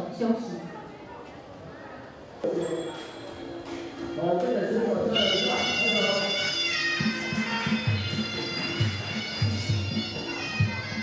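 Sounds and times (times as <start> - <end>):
oboe playing long high note: 5.0 - 11.0.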